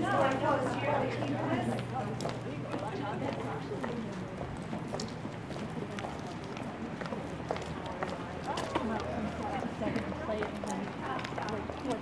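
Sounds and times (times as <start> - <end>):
footsteps on pavement: 0.0 - 12.0
indistinct chatter: 0.0 - 12.0.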